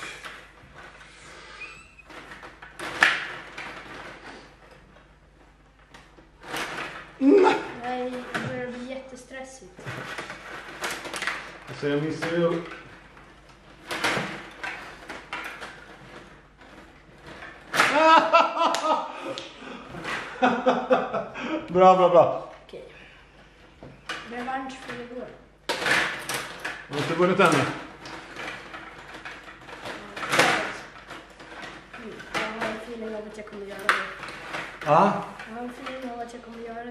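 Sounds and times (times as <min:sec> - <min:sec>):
plastic knocks and clacks: 0:02.0 - 0:08.8, 0:09.8 - 0:18.0, 0:23.3 - 0:36.9
person exclaiming: 0:17.9 - 0:19.1
table hockey game clattering: 0:23.8 - 0:36.9.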